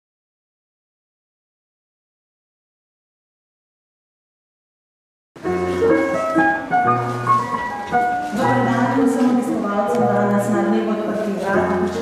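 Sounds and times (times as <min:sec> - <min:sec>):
digital piano melody: 0:05.4 - 0:12.0.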